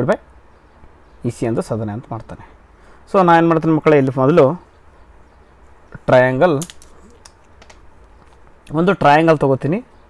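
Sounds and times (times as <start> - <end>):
man speaking: 1.2 - 4.6, 5.9 - 6.6.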